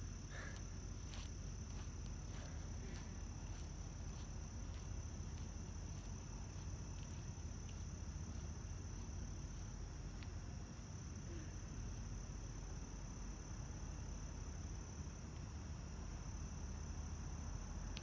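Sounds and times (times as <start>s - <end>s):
faint footsteps on pavement: 0.0s - 12.2s
crickets chirping: 0.0s - 18.0s.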